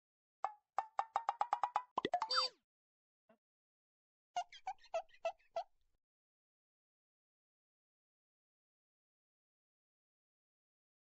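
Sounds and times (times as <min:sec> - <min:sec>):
cartoon pitched plops: 0:01.0 - 0:02.5.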